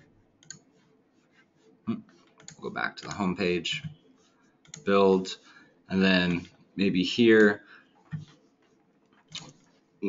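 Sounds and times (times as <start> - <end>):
computer mouse clicks: 0.4 - 0.7, 2.3 - 4.0, 4.6 - 4.9, 9.2 - 9.7.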